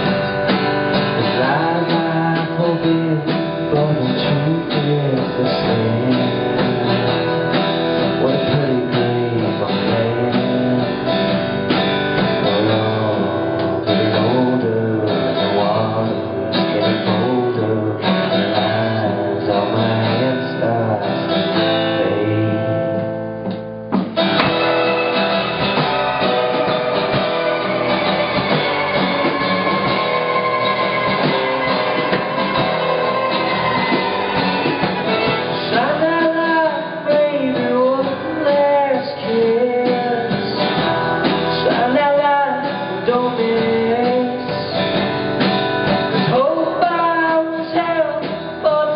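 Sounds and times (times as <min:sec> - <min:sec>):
man singing lead vocal: 0:00.0 - 0:11.5, 0:12.2 - 0:23.0, 0:26.1 - 0:45.1, 0:46.1 - 0:48.9
country band playing live: 0:00.0 - 0:48.9
strummed acoustic guitar: 0:00.0 - 0:48.9.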